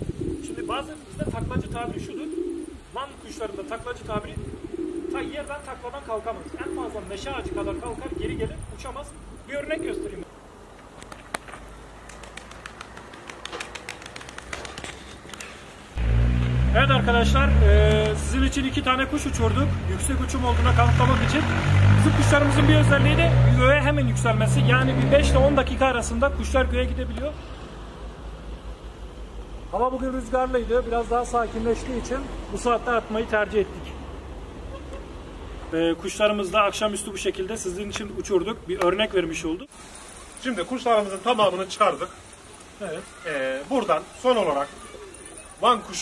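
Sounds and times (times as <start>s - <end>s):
man speaking: 5.1s - 10.3s, 16.7s - 27.4s, 45.6s - 46.0s
pigeon wings flapping: 11.0s - 15.9s.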